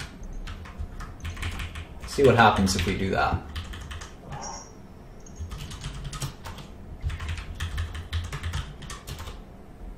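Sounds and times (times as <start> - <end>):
low background hum: 0.0 - 9.9.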